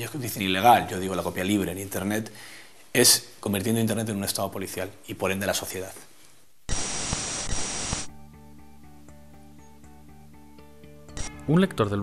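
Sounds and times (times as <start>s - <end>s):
static hiss with whine: 0.0s - 8.2s
crackles: 6.2s - 8.1s
quiet music with held notes: 8.1s - 12.0s.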